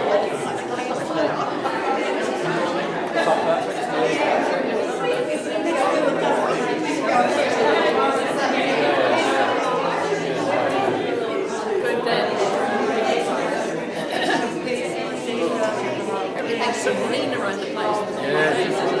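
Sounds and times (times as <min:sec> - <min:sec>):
crowd of voices chatting: 0:00.0 - 0:19.0.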